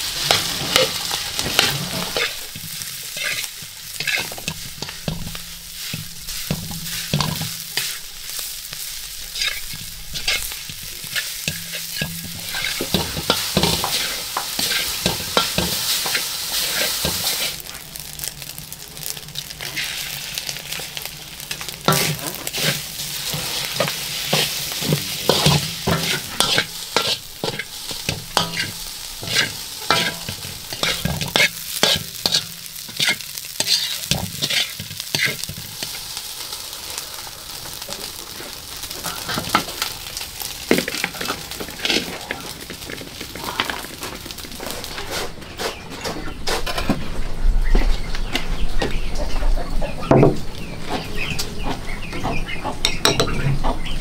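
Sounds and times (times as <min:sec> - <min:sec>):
metal spatula scraping a pan: 0:00.0 - 0:17.8, 0:20.7 - 0:36.1, 0:38.9 - 0:47.1
rice sizzling in a wok: 0:00.0 - 0:54.0.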